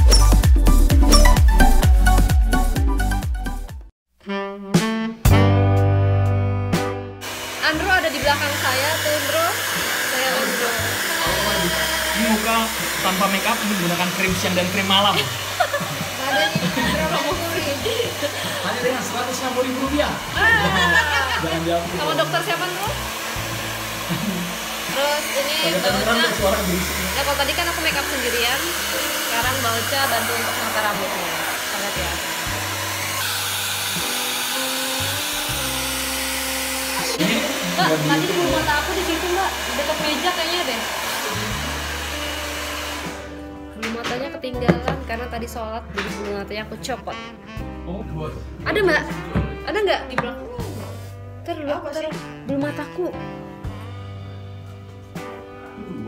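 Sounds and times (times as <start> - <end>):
background music sustained notes: 4.6 - 56.0
hair dryer blowing: 7.2 - 43.5.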